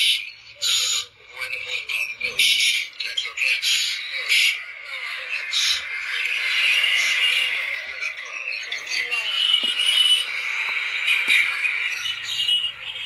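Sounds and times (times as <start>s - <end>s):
chorus of high-pitched animal calls: 0.0s - 13.0s.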